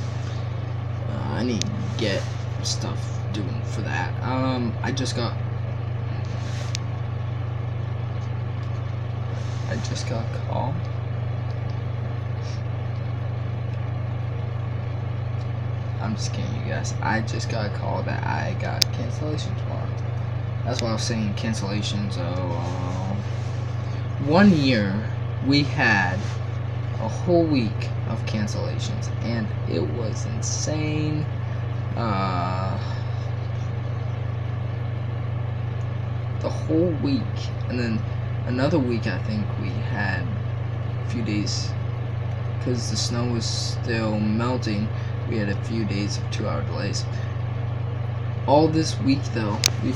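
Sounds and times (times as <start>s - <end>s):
steady low hum: 0.0s - 49.9s.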